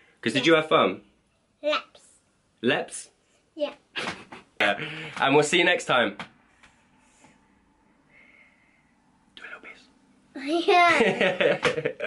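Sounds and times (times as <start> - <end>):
person whispering: 9.4 - 9.9.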